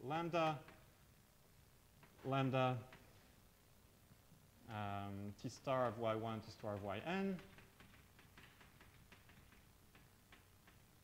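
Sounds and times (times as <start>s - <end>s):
chalk tapping on blackboard: 5.7s - 10.9s.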